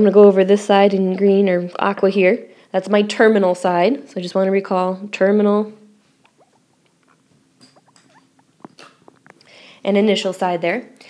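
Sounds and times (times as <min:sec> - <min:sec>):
stylus squeaking on glass screen: 0:06.1 - 0:09.4.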